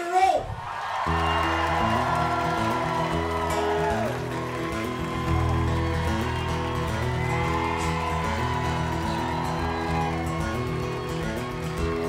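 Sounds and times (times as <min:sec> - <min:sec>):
instrumental guitar band music: 0:01.1 - 0:12.0.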